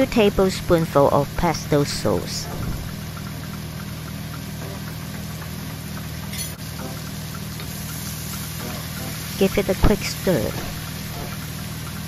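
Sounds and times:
steady low hum: 0:00.0 - 0:12.0
mushrooms sizzling in a skillet: 0:03.0 - 0:12.0.

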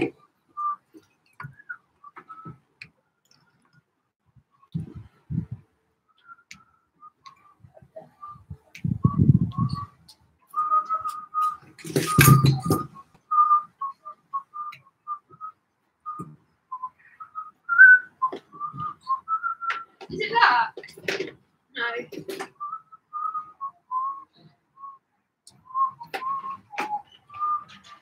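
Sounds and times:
person whistling a tune: 0:01.4 - 0:02.5, 0:06.2 - 0:20.0, 0:22.6 - 0:28.0.

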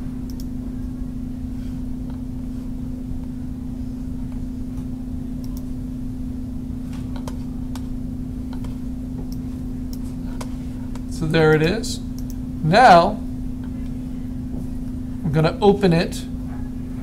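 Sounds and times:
low electrical hum: 0:00.0 - 0:17.0
computer mouse clicks: 0:00.3 - 0:00.5, 0:05.4 - 0:05.7, 0:12.2 - 0:12.4.

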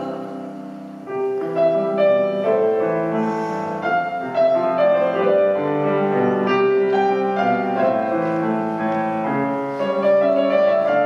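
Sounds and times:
solo grand piano: 0:00.0 - 0:11.0.

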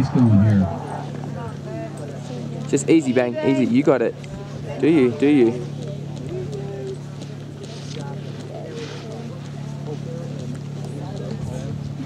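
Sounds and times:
distant spectators' voices: 0:00.0 - 0:12.0
steady low hum: 0:00.0 - 0:12.0.

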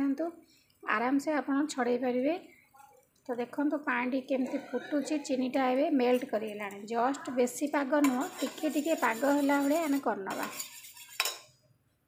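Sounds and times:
spoon stirring and scraping in pot: 0:06.0 - 0:11.6
spoon clinking against pot: 0:08.0 - 0:11.6.

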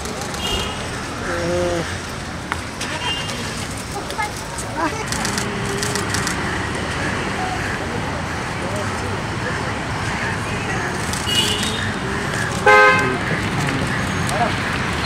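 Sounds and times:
background chatter: 0:00.0 - 0:15.0
street traffic: 0:00.0 - 0:15.0
vehicle horn honk: 0:12.6 - 0:13.2.

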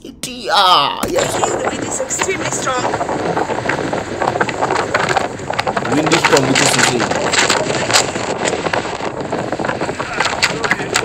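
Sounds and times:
small crackling pops: 0:01.0 - 0:11.0
strong wind on microphone: 0:01.0 - 0:11.0.

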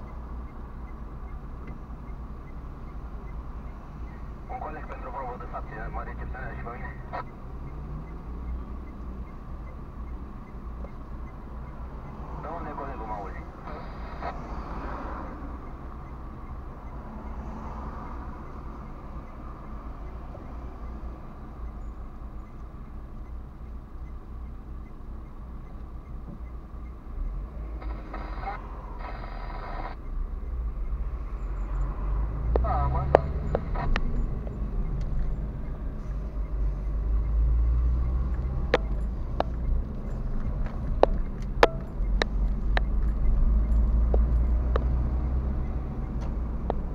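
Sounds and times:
surrounding traffic: 0:00.0 - 0:46.9
car idling rumble: 0:32.4 - 0:44.6.

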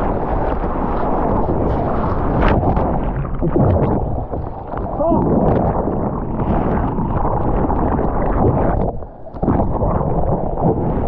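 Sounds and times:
whitewater churning and splashing: 0:00.0 - 0:11.0.

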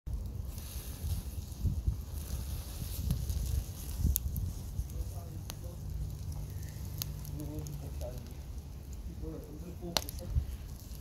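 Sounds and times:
burning charcoal crackling: 0:00.1 - 0:11.0
charcoal popping: 0:00.1 - 0:11.0.

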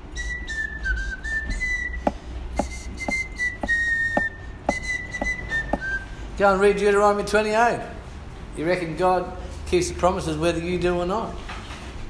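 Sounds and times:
person whistling a tune: 0:00.0 - 0:06.2
light taps: 0:02.0 - 0:05.9.

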